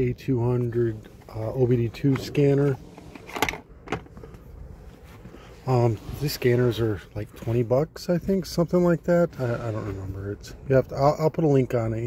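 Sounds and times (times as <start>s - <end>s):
faint rustling: 0.7s - 10.6s.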